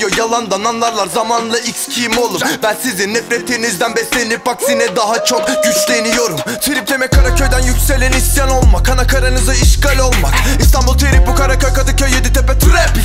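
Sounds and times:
rapping over a beat: 0:00.0 - 0:13.0
long held tone: 0:04.6 - 0:06.8.

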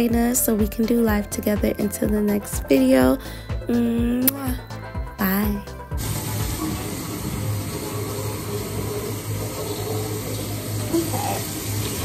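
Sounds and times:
faucet running into sink: 0:06.0 - 0:12.0.

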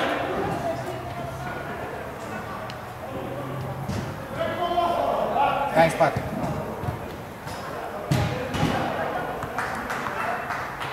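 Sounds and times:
ball kicked thuds: 0:06.1 - 0:08.9.

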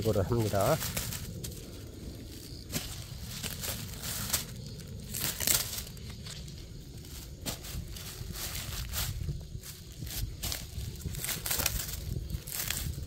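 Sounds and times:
plastic film and leaves crinkling: 0:00.0 - 0:13.0.

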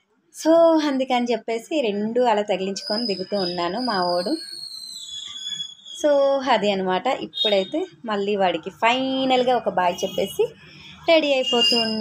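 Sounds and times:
woman's voice: 0:00.4 - 0:04.4, 0:06.0 - 0:12.0
high thin whistling tone: 0:02.8 - 0:06.1.

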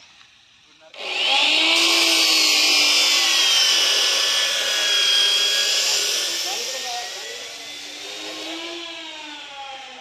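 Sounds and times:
electric power tool whining: 0:00.9 - 0:10.0.

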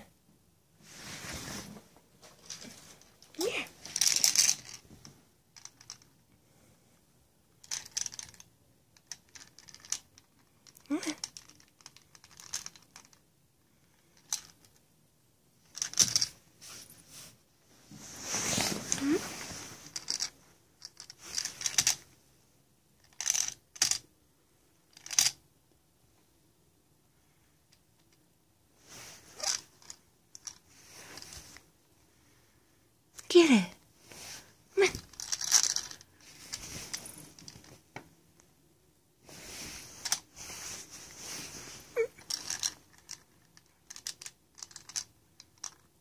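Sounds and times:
plastic toy rings rattling: 0:02.4 - 0:04.9, 0:05.6 - 0:06.2, 0:07.6 - 0:13.2, 0:14.0 - 0:14.8, 0:15.7 - 0:16.4, 0:19.8 - 0:22.0, 0:23.0 - 0:24.1, 0:24.9 - 0:25.4, 0:29.3 - 0:30.6, 0:34.8 - 0:37.7, 0:42.0 - 0:45.9.

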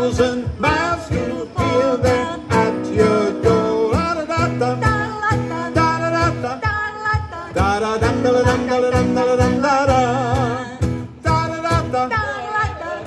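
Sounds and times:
man and woman singing together: 0:00.0 - 0:13.0
strummed acoustic guitar: 0:00.0 - 0:13.0.

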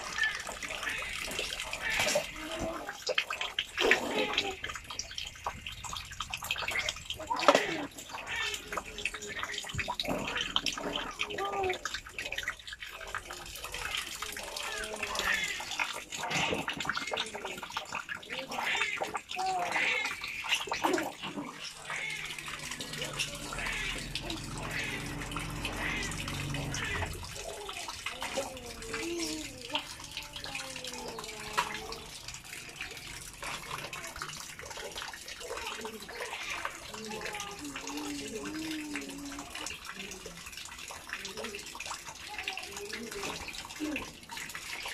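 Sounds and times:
water splashing and trickling: 0:00.0 - 0:44.9.

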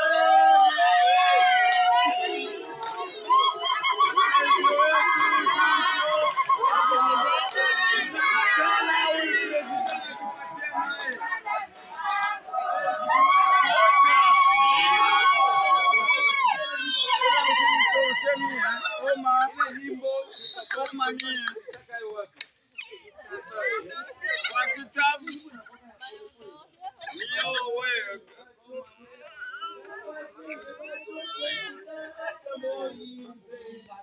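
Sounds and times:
crowd murmuring: 0:00.0 - 0:34.0
women giving high cries: 0:13.1 - 0:19.2.

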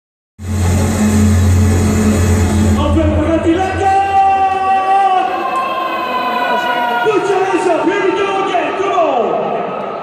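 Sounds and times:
deep bass note: 0:00.4 - 0:05.1
loud live music over speakers: 0:00.4 - 0:05.3.

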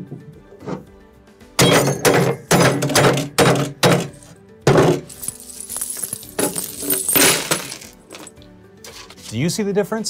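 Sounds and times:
background music: 0:00.0 - 0:10.0
hammer smashing mug in bag: 0:01.6 - 0:08.3.

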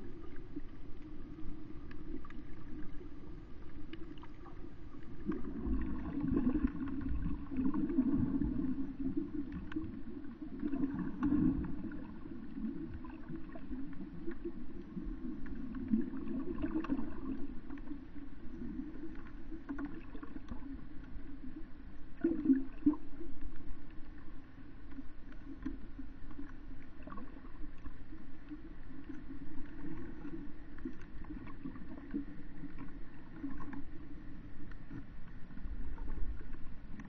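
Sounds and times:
underwater rushing water: 0:00.0 - 0:37.0
faint clicks: 0:00.3 - 0:05.5, 0:23.4 - 0:37.0.

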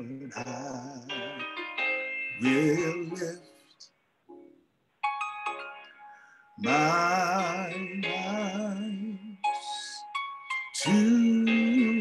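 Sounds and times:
man singing with vibrato: 0:00.0 - 0:01.6, 0:02.3 - 0:03.8, 0:06.6 - 0:10.1, 0:10.8 - 0:12.0.

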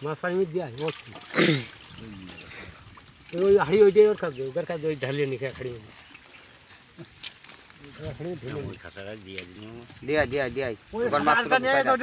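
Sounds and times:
wet weeds rustling on tarp: 0:00.8 - 0:12.0.

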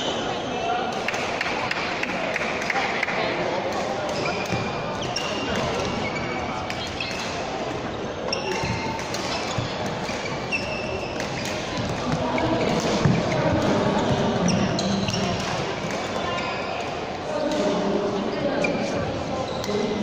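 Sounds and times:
hum of voices in a hall: 0:00.0 - 0:20.0
shoe squeaks on court floor: 0:07.9 - 0:11.6, 0:14.4 - 0:15.4.

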